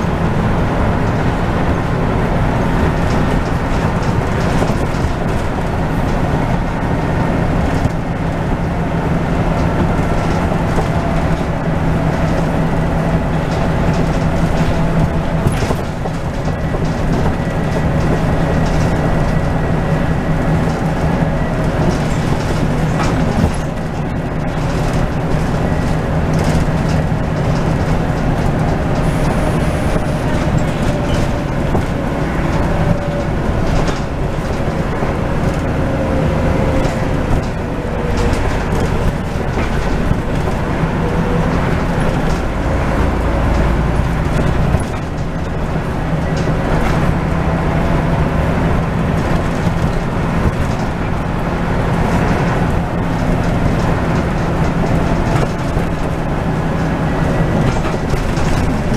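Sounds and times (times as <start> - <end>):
bus diesel engine drone: 0.0 - 58.9
deep rumble: 0.0 - 58.9
road noise: 0.0 - 58.9.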